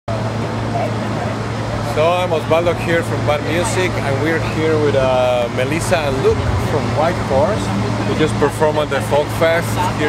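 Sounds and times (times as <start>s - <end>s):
distant people talking: 0.1s - 10.0s
low hum: 3.8s - 9.0s.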